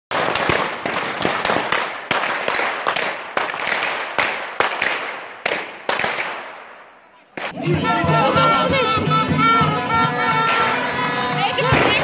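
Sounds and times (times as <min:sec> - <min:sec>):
loud sharp cracks with echo: 0:00.1 - 0:07.6.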